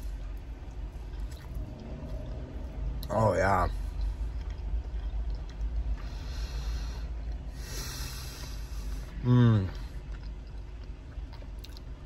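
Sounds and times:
man chewing: 0.0s - 12.0s
steady low rumble: 0.0s - 12.0s.

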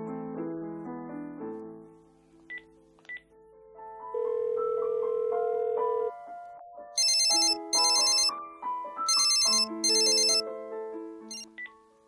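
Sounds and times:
telephone ringing: 4.2s - 6.1s, 7.0s - 8.3s, 9.1s - 10.4s, 11.3s - 11.5s.

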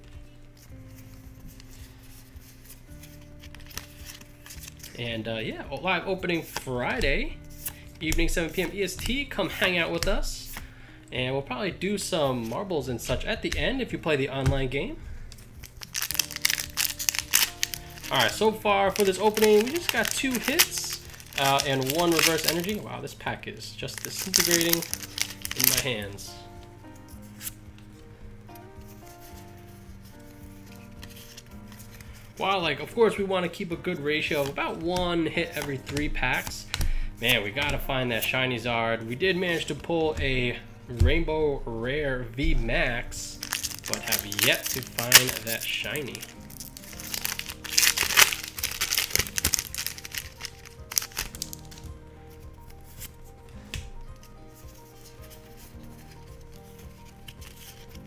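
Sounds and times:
trading cards rustling: 0.0s - 10.8s, 12.1s - 38.4s, 42.4s - 58.0s
quiet background music: 0.0s - 58.0s
foil wrapper tearing and crinkling: 3.0s - 5.1s, 15.4s - 22.8s, 23.8s - 26.2s, 43.4s - 51.9s, 54.9s - 58.0s.

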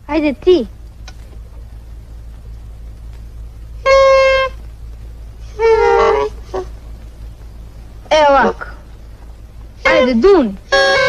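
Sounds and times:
reedy pipe notes: 2.7s - 11.0s.

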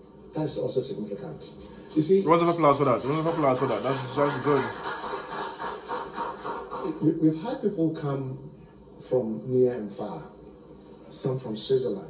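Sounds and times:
people talking: 0.4s - 10.4s, 11.1s - 12.0s.

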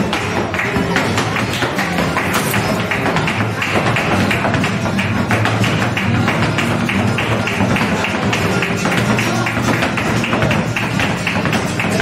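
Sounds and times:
flamenco guitar: 0.0s - 12.0s
dancer's feet striking wooden stage: 0.7s - 6.0s.

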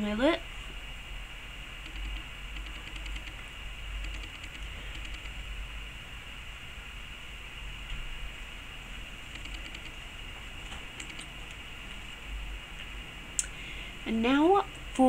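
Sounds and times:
low hum: 0.0s - 15.0s
steady background hiss: 0.0s - 15.0s.

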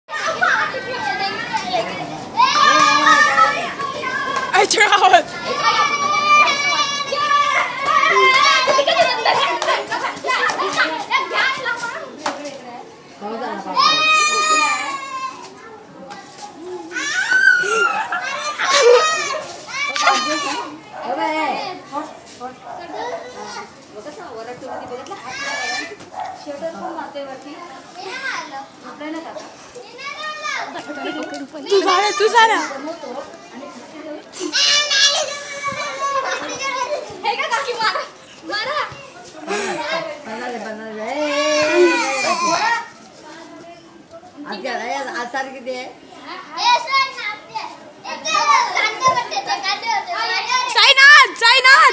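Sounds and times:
boys calling out and shouting: 0.1s - 51.9s.

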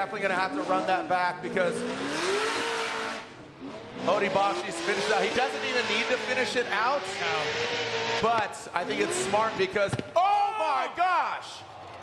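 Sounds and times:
car engine revving: 0.4s - 9.8s.

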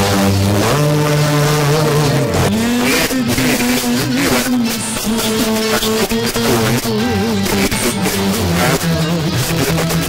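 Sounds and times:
music on car radio: 0.0s - 10.0s.

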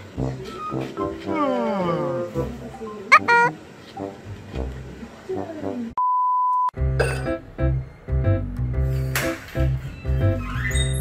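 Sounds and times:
censor bleep tone: 6.0s - 6.7s.

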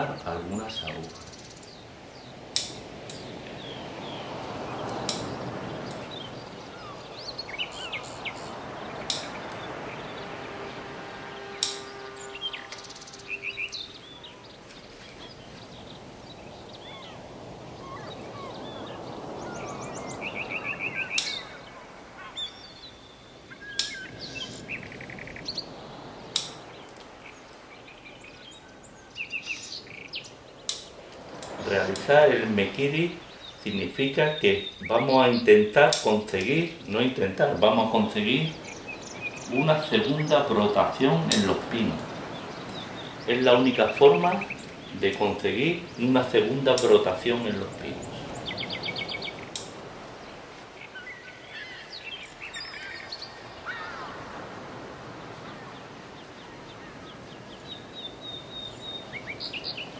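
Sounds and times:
birds chirping: 0.0s - 59.9s.

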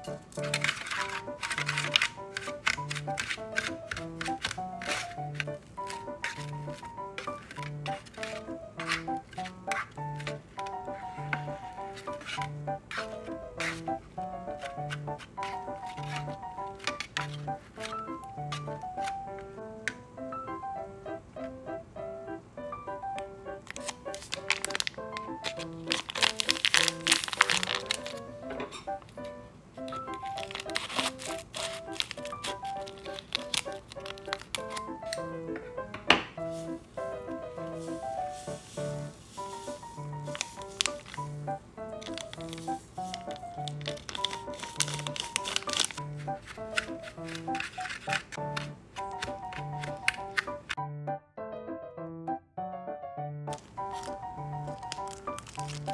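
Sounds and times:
foil sachet crinkling and tearing: 0.0s - 19.4s, 23.6s - 29.2s, 29.8s - 35.3s, 36.5s - 50.8s, 53.5s - 55.9s
gentle background music: 0.0s - 55.9s.

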